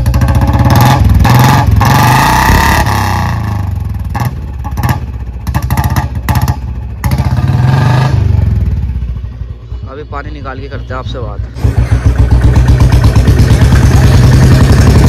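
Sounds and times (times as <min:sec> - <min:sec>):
motorcycle engine revving: 0:00.0 - 0:10.1, 0:11.4 - 0:15.0.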